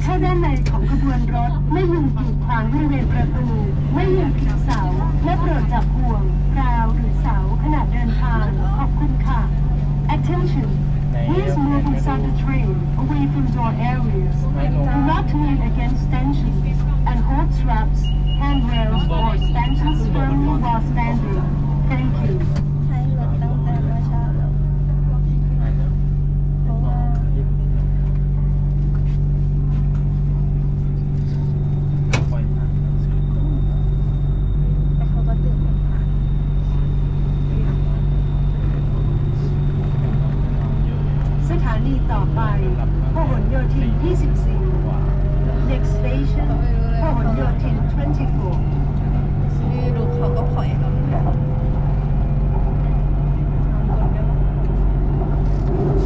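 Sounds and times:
train equipment hum: 0.0s - 56.0s.

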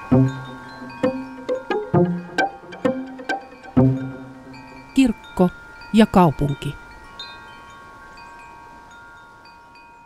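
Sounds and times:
chimes ringing: 0.0s - 10.0s.

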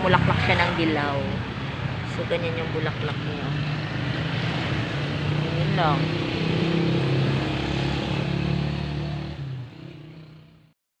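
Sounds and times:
steady engine hum: 0.0s - 10.7s.

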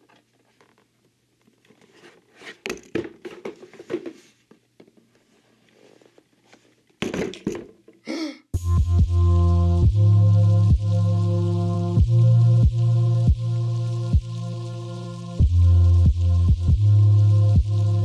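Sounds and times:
electronic music with deep bass: 8.6s - 18.0s.

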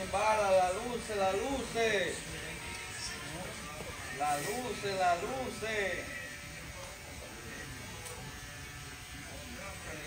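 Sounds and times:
electric hair trimmer buzzing: 0.0s - 10.0s.

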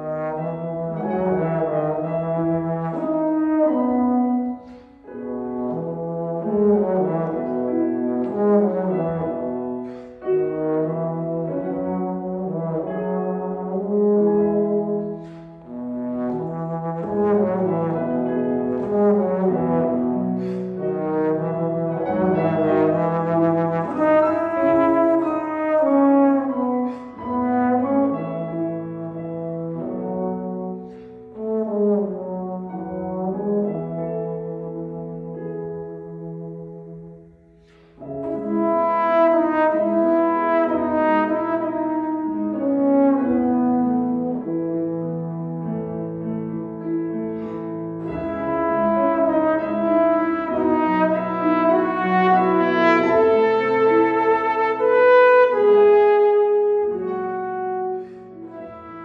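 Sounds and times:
grand piano accompaniment: 0.0s - 59.0s
trombone melody: 0.0s - 59.0s.

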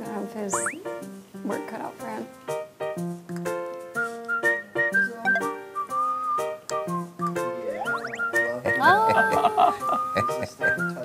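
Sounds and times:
bouncy plucked accompaniment: 0.0s - 11.0s
whistled tune: 4.0s - 9.0s, 9.8s - 11.0s.

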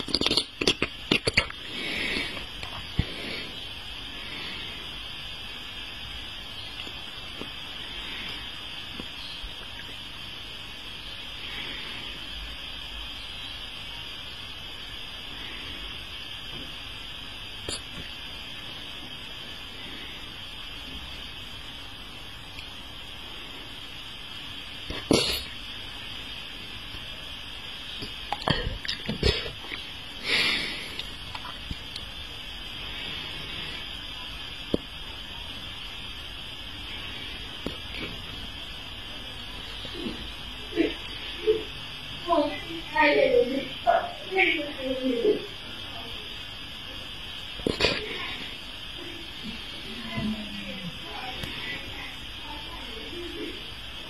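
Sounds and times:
wet mouth clicks: 0.0s - 1.7s, 17.6s - 18.0s, 28.0s - 29.8s, 31.0s - 32.1s
background hiss: 0.0s - 54.0s
breathy puff: 0.1s - 4.9s.

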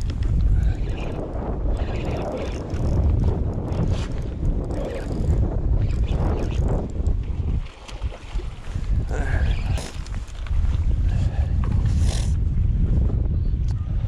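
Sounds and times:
wind buffeting microphone: 0.0s - 14.0s.

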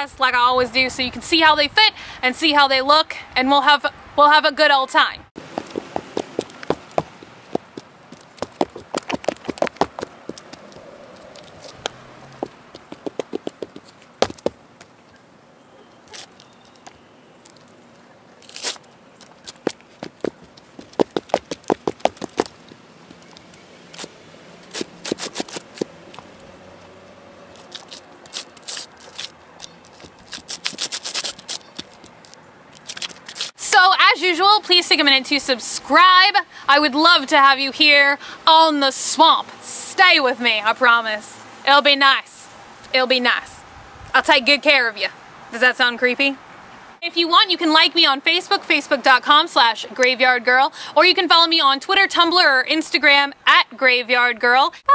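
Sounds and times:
heel clicks on concrete: 5.4s - 14.6s, 18.6s - 22.6s, 24.7s - 26.3s, 27.6s - 33.5s.

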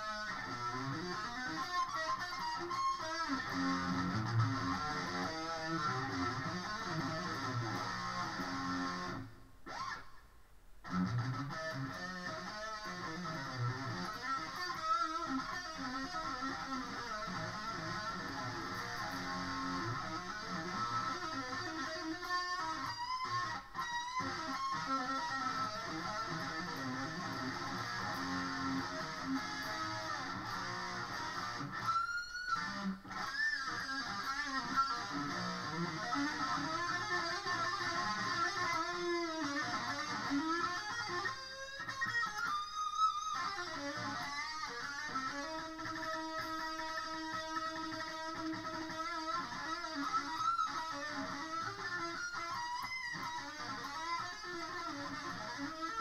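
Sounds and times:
electric guitar lead lines: 0.0s - 56.0s.

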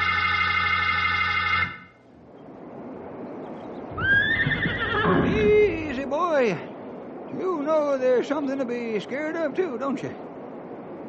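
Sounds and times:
organ chord: 0.0s - 2.0s
rushing water with low rumble: 2.0s - 11.0s
horse whinnying: 4.0s - 5.5s.

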